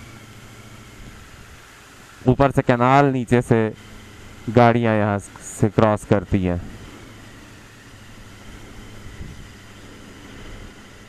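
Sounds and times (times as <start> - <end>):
motorcycle engine humming: 0.0 - 11.0
wind and road noise: 0.0 - 11.0.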